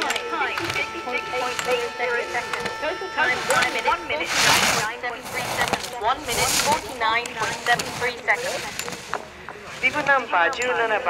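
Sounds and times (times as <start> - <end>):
people calling out: 0.0 - 8.8.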